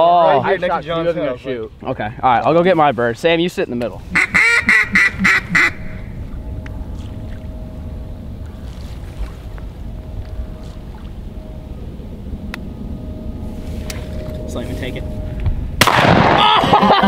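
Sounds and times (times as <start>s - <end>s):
faint steady hum: 0.0s - 17.0s
duck quacking: 4.1s - 6.1s.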